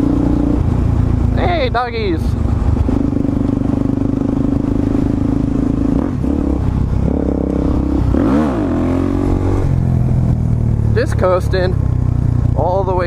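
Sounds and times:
motorcycle engine revving: 0:00.0 - 0:13.0.

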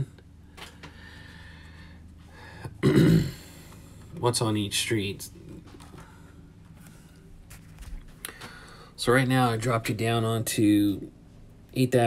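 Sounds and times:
man clearing his throat: 0:02.7 - 0:03.6.

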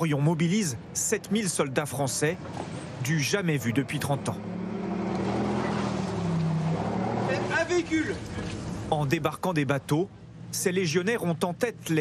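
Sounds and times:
heavy vehicle engine humming: 0:02.4 - 0:09.2.

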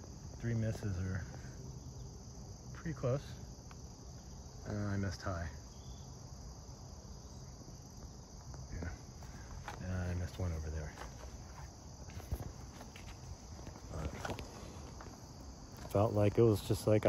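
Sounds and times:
insect chorus: 0:00.0 - 0:17.0
footsteps: 0:08.3 - 0:16.6.

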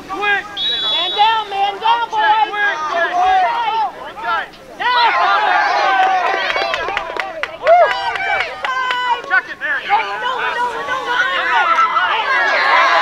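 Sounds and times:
crowd shouting: 0:00.0 - 0:13.0.

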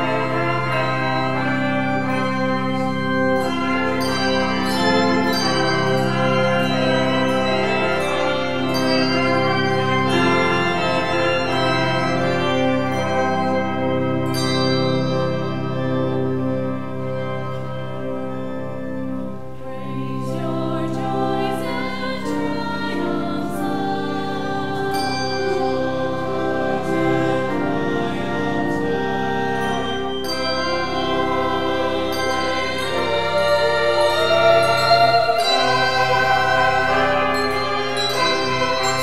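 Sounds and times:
brass ensemble chords: 0:00.0 - 0:20.0, 0:22.9 - 0:39.0
handbells ringing: 0:29.6 - 0:39.0.

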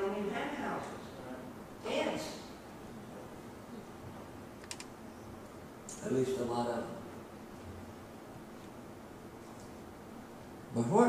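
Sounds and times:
low room noise: 0:00.0 - 0:11.0
small sharp clicks: 0:04.6 - 0:04.9.

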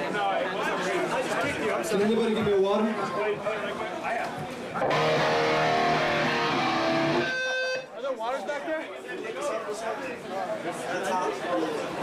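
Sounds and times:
crowd chatter: 0:00.0 - 0:12.0
electric guitar chord strummed: 0:04.8 - 0:07.8.

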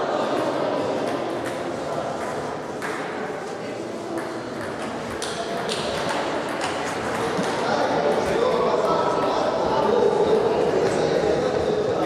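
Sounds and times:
hum of echoing voices: 0:00.0 - 0:12.0.

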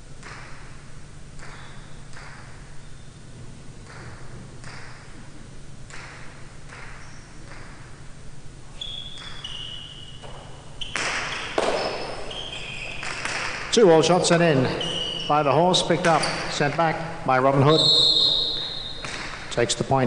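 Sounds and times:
shoes squeaking on court: 0:01.4 - 0:03.2, 0:06.7 - 0:07.9, 0:08.7 - 0:19.7
ball cracking against wall: 0:10.2 - 0:12.0, 0:13.0 - 0:13.8, 0:19.0 - 0:19.5.

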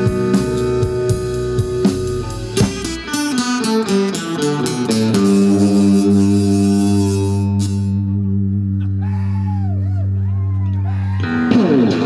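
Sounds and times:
live band holding a chord: 0:00.0 - 0:08.8
wavering pitch glides: 0:03.3 - 0:10.6.

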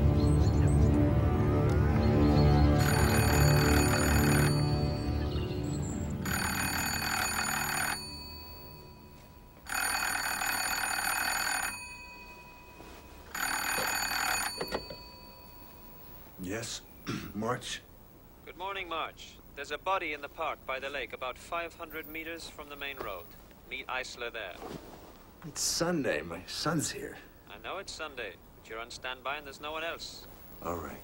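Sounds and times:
low film music: 0:00.0 - 0:09.0
telephone bell ringing: 0:02.7 - 0:05.5, 0:06.1 - 0:16.4
handset picked up: 0:11.7 - 0:15.8.

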